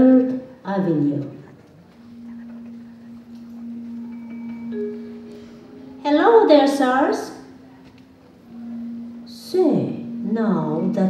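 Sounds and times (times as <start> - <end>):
low ringing musical note: 2.0 - 11.0.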